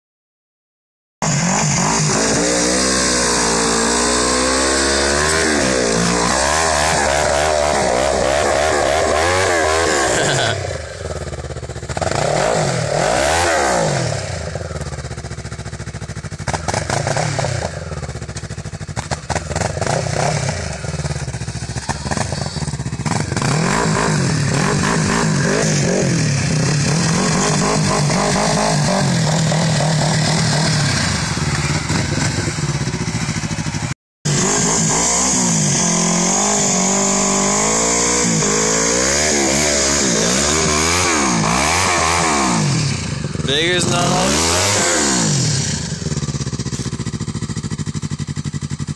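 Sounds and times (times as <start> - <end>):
snowmobile engine revving: 1.2 - 14.8, 16.5 - 18.2, 19.3 - 46.9.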